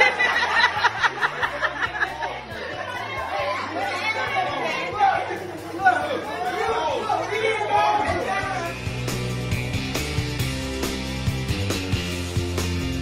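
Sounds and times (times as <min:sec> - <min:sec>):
people chattering: 0:00.0 - 0:09.0
faint music: 0:00.0 - 0:09.6.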